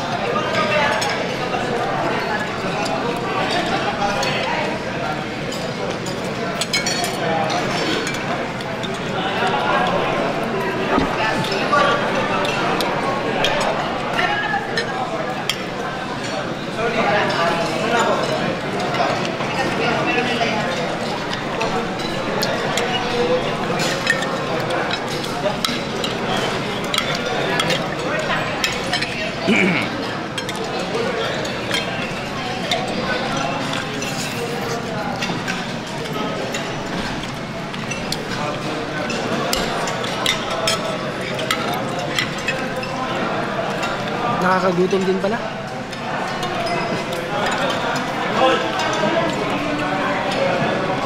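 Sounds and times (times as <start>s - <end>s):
diners chatting: 0.0s - 51.0s
cutlery clinking on plates: 0.4s - 51.0s.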